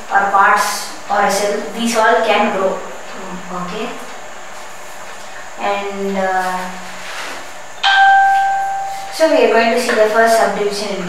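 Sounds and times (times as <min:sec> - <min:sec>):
bell-like ding: 0:07.8 - 0:09.1.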